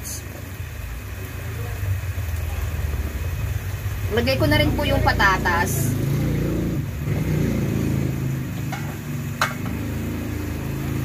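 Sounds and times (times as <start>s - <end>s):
motor engine running: 0.0s - 11.0s.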